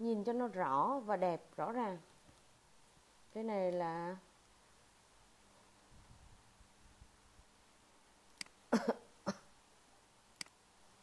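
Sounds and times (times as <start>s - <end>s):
mouse click: 8.4s - 8.6s
person coughing: 8.8s - 9.5s.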